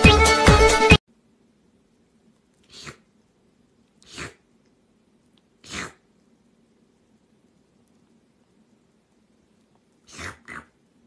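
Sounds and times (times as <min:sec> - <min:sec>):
pet sneezing: 0:02.6 - 0:03.1, 0:04.0 - 0:04.4, 0:05.6 - 0:06.0, 0:10.0 - 0:10.7.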